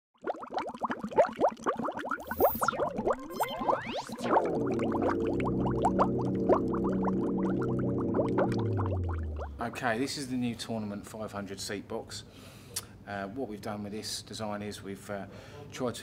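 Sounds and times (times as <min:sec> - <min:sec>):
short chirping blips: 0:02.2 - 0:04.2
rising electronic sweep: 0:02.2 - 0:09.8
held synth chord: 0:03.6 - 0:09.8.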